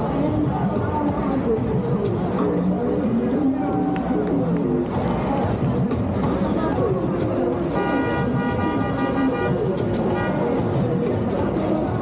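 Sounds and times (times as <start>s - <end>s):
crowd chatter: 0.0s - 12.0s
vehicle horn honking: 7.8s - 10.5s.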